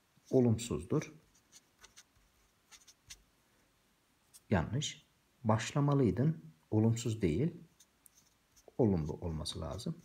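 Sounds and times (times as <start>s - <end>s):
marker scratching on paper: 1.2s - 3.2s.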